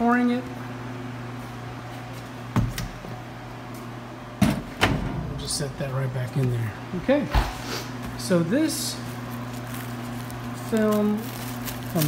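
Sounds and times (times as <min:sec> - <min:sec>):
steady low hum: 0:00.0 - 0:12.0
refrigerator door opening: 0:04.4 - 0:05.7.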